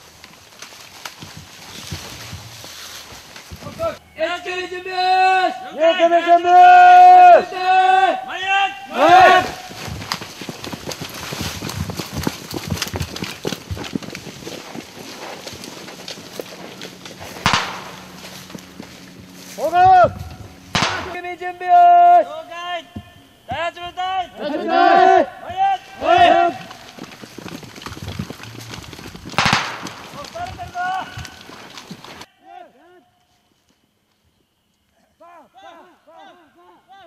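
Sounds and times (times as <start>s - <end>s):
rustle of grass and leaves: 0.0s - 4.6s, 8.9s - 22.4s, 25.5s - 32.3s
soldiers shouting together: 3.8s - 9.8s, 19.6s - 22.9s, 23.5s - 26.8s, 32.2s - 33.1s, 35.2s - 37.0s.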